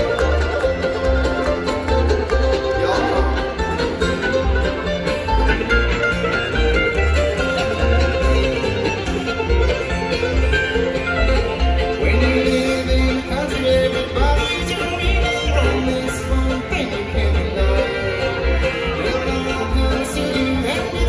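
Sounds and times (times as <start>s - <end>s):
acoustic guitar: 0.0s - 21.0s
banjo: 0.0s - 21.0s
fiddle: 0.0s - 21.0s
mandolin: 0.0s - 21.0s
upright bass pulsing: 0.0s - 21.0s.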